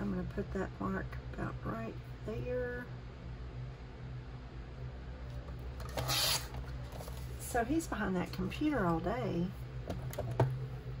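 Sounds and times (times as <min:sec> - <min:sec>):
paper trimmer blade cutting paper: 0:05.9 - 0:06.5.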